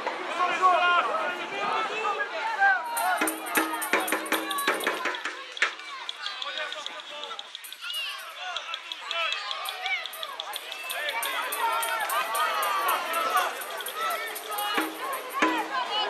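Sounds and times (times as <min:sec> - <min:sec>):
crowd calling and shouting: 0:00.0 - 0:16.0.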